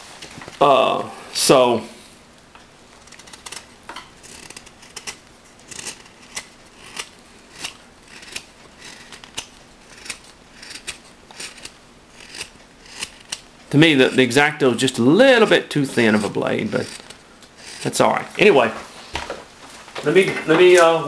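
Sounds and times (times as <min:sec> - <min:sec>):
knife shaving wood: 0:02.9 - 0:13.5, 0:14.9 - 0:18.2.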